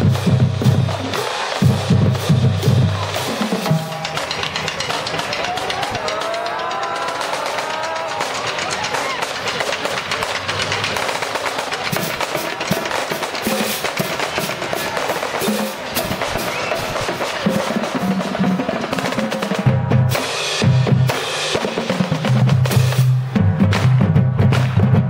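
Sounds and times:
snare drum strokes and rolls: 0:00.0 - 0:25.0.

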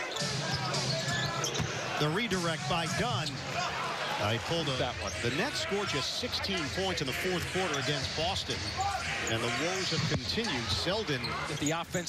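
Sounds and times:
crowd murmur: 0:00.0 - 0:11.6.

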